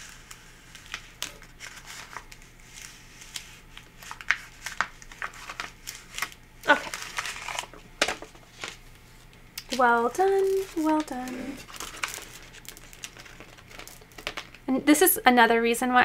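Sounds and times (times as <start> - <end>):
paper backing peeling: 0.0 - 14.6.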